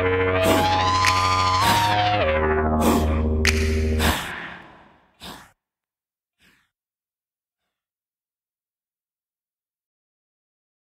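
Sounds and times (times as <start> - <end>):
echoing breathy vocal sigh: 2.7 - 5.6.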